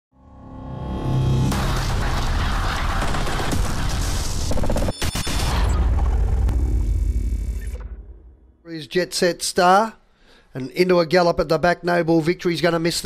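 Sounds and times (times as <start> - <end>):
sharp hits: 0.9 - 8.6
heavy low boom: 5.2 - 8.6
deep rumble: 5.5 - 8.6.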